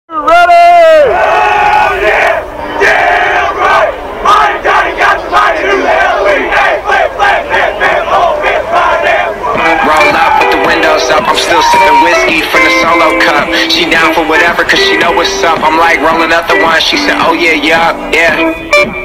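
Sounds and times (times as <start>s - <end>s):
loud drawn-out yell: 0.1s - 12.4s
crowd cheering and shouting: 0.1s - 18.4s.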